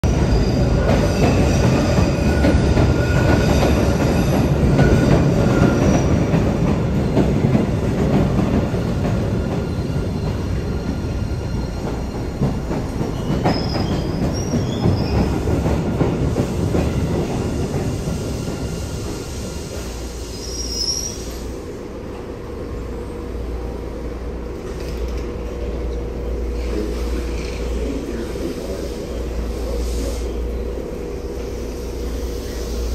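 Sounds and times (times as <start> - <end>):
steel wheels rumbling on rail: 0.0 - 32.9.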